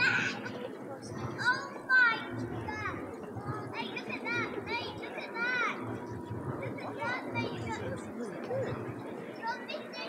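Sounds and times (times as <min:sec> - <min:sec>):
children calling out in a crowd: 0:00.0 - 0:06.0.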